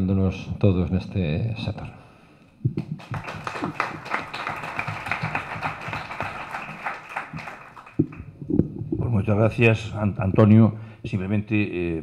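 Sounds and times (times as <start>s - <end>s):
audience applauding: 2.8s - 8.3s.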